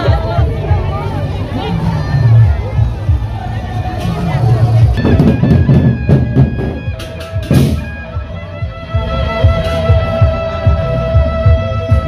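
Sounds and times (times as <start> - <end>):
crowd voices: 0.0 - 12.0
barrel drums struck quickly: 5.0 - 8.1
ringing percussion tones: 5.0 - 9.8.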